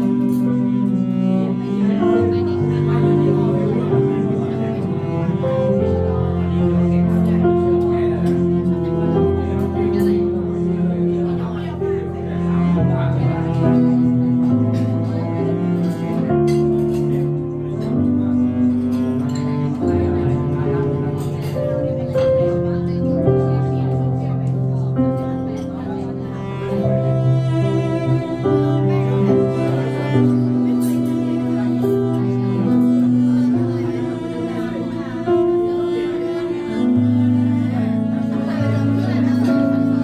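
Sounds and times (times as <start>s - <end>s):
bowed cello sustained note: 0.0s - 40.0s
piano chords: 0.0s - 40.0s.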